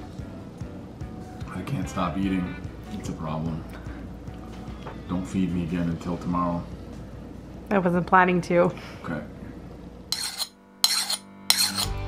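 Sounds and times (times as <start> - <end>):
file scraping steel axe head: 10.1 - 12.0.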